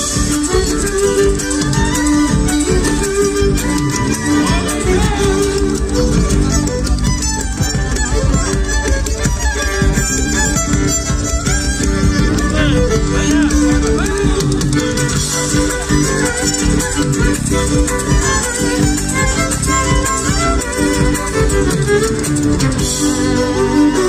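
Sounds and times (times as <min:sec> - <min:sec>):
folk band playing dance music: 0:00.0 - 0:24.0
guitar: 0:00.0 - 0:24.0
violin: 0:00.0 - 0:24.0.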